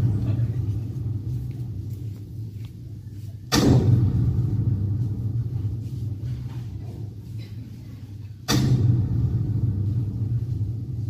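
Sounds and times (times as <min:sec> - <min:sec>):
deep low rumble: 0:00.0 - 0:11.0
booming hit: 0:03.5 - 0:06.8, 0:08.5 - 0:11.0.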